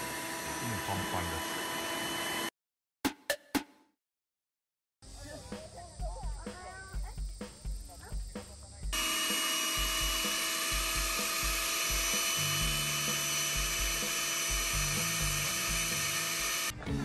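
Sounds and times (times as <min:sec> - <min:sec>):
cordless blower whining: 0:00.0 - 0:02.5, 0:09.0 - 0:16.8.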